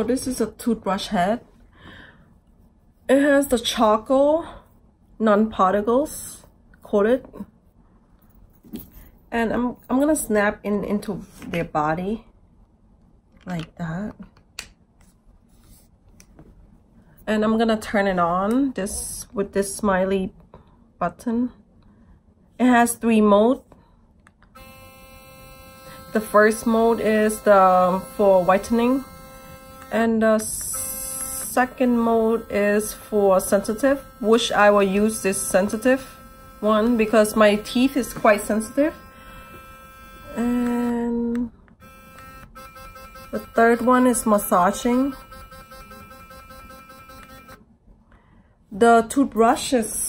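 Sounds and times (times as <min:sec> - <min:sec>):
electric toothbrush buzzing: 0:24.6 - 0:41.1, 0:41.8 - 0:47.6.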